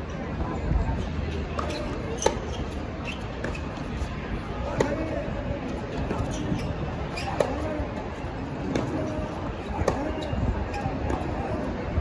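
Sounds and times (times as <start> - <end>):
spectators talking: 0.0 - 12.0
stadium crowd murmur: 0.0 - 12.0
tennis ball hit and bouncing: 1.5 - 5.2, 7.2 - 8.0, 8.6 - 11.6.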